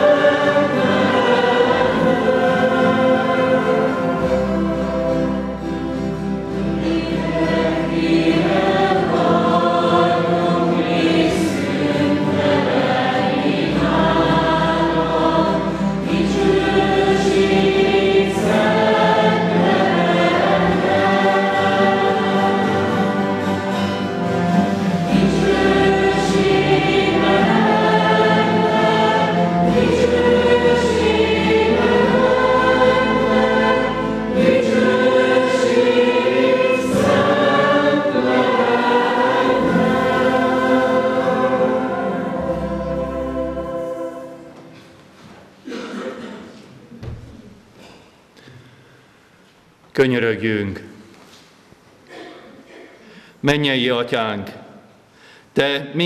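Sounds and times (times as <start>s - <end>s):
people singing a hymn: 0.0s - 47.2s
acoustic guitars: 0.0s - 49.6s.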